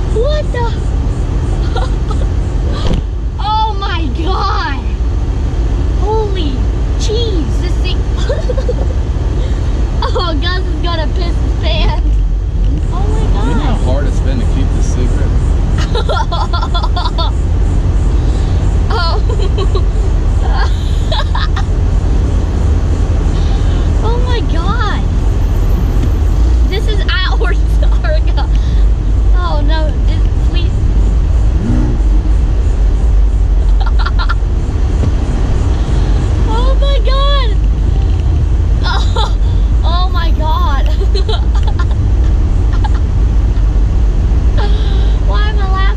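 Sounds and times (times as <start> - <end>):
voices talking: 0.0 - 22.5, 23.1 - 45.9
car engine road and wind rumble: 0.0 - 45.9.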